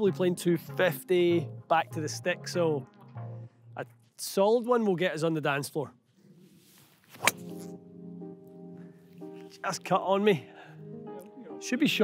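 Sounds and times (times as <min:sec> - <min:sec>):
golf club striking ball: 0:07.1 - 0:07.8.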